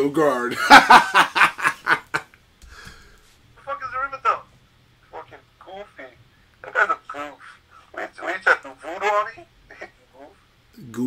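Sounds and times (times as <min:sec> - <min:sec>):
man laughing: 0:00.5 - 0:02.3.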